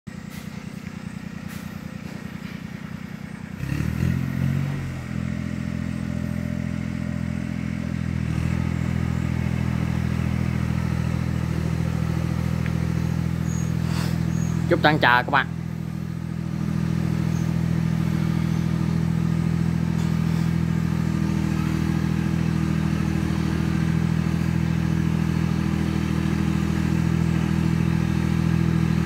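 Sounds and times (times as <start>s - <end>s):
tractor diesel engine idling and revving: 0.1s - 29.0s.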